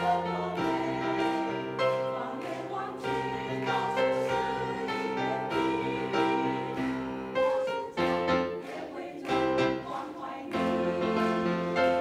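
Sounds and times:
choir of women singing: 0.0s - 12.0s.

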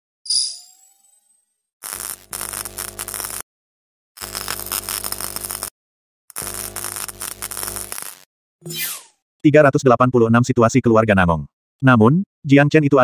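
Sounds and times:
buzzing hum: 1.8s - 3.4s, 4.2s - 5.7s, 6.3s - 8.2s
static hiss: 1.8s - 3.4s, 4.2s - 5.7s, 6.3s - 8.3s.

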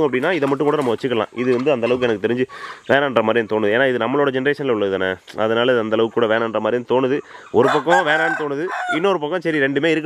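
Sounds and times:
rooster crowing: 7.6s - 9.2s.

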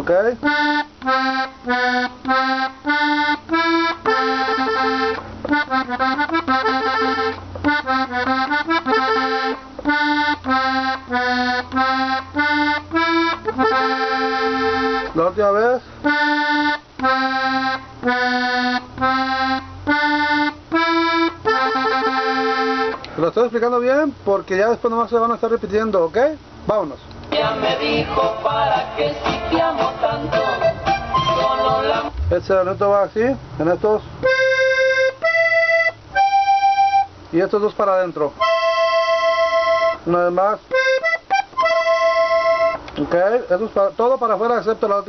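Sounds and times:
button accordion notes: 0.0s - 23.6s, 27.3s - 33.1s, 33.8s - 44.0s.

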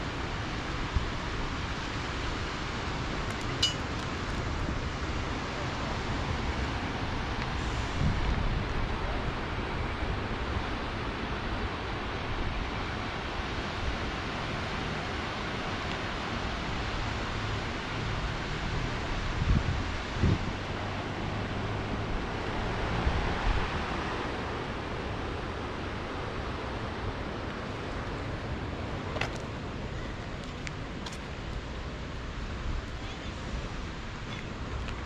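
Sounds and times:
wind on microphone: 7.1s - 10.8s, 19.1s - 23.9s
sea surf on rocky shore: 18.8s - 35.0s.

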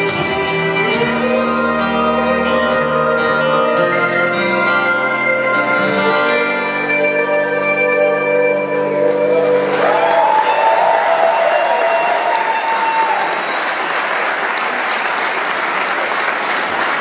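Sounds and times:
folk-rock band playing: 0.0s - 10.3s
audience applause: 9.0s - 17.0s.

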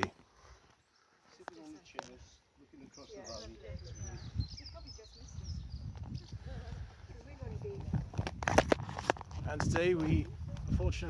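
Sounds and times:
people chattering outdoors: 0.0s - 11.0s
microphone handling rumble: 4.2s - 11.0s.

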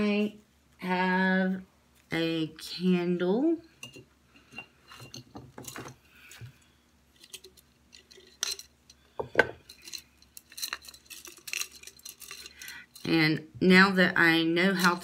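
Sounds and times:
objects clinking on a table: 3.8s - 6.0s.

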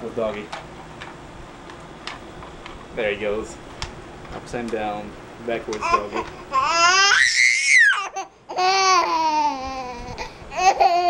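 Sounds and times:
baby squealing: 5.8s - 11.0s.

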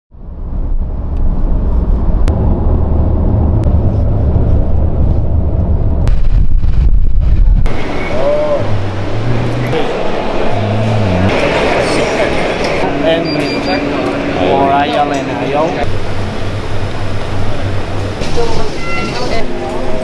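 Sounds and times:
car cabin road rumble: 0.2s - 20.0s.

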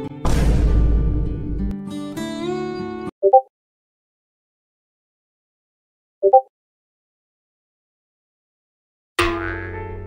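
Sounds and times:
cartoon boing: 9.2s - 10.0s.

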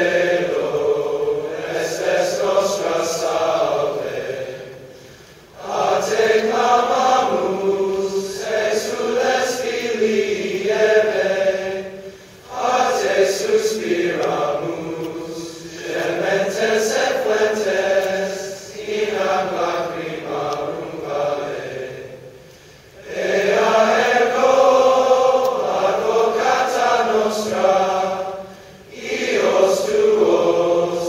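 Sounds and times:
male choir chanting: 0.0s - 22.4s, 23.0s - 31.0s.

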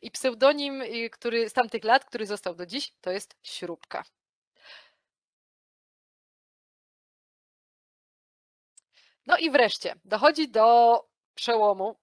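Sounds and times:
person breathing: 4.6s - 5.1s, 8.9s - 9.2s.

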